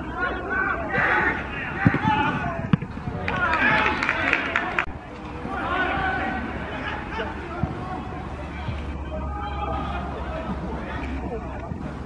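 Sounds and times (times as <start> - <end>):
crowd chatter: 0.0 - 12.0
people shouting and calling out: 0.0 - 12.0.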